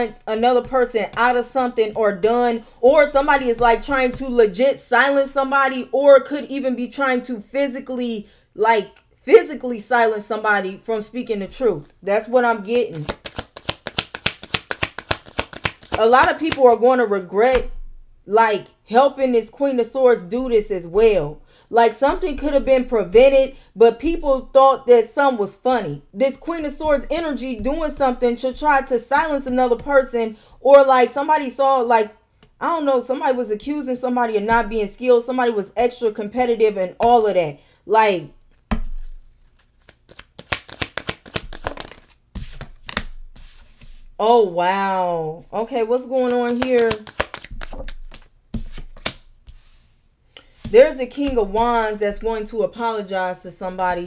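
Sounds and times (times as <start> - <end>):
cards being shuffled: 12.9 - 16.7, 38.5 - 44.1, 46.3 - 49.8.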